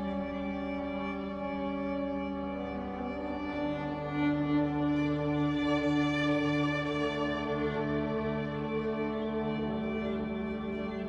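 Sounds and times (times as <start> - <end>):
bowed viola long notes: 0.0 - 11.0.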